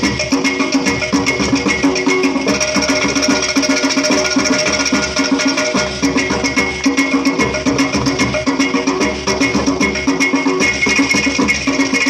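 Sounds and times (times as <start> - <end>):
clay pot drums: 0.0 - 12.0
hand drums playing fast rhythm: 0.0 - 12.0.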